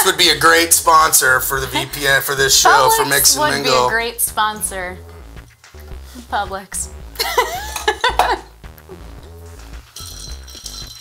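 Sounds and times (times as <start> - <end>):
voices: 0.0 - 5.0
background music: 0.0 - 11.0.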